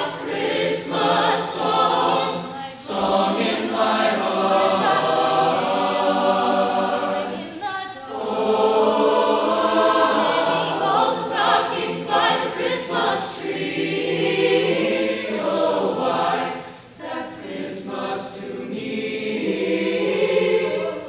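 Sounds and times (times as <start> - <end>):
choir singing: 0.0 - 21.0.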